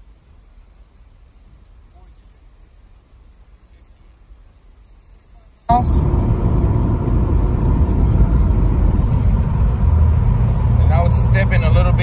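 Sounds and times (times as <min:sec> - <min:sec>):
car engine rumble inside cabin: 0:01.1 - 0:12.0.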